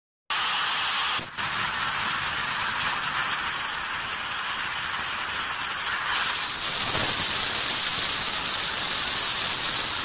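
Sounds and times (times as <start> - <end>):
television static hiss: 0.3 - 10.0.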